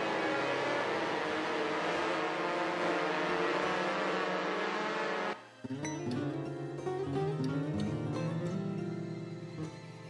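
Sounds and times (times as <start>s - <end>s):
distorted electronic drone: 0.0s - 5.4s.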